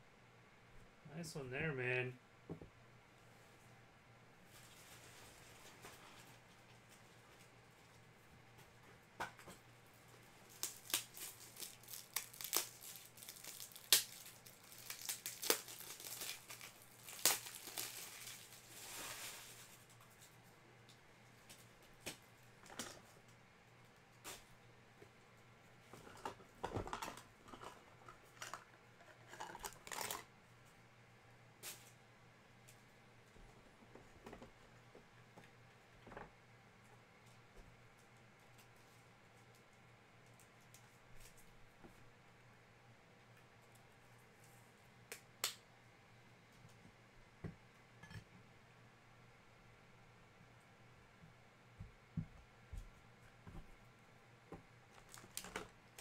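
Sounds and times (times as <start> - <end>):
wrappers tearing and crinkling: 10.4 - 20.0, 29.3 - 30.3, 55.0 - 55.7.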